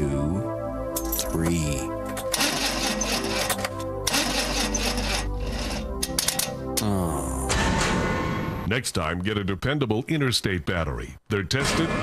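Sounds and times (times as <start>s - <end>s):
music: 0.0s - 8.7s
car starter motor cranking: 2.2s - 6.5s.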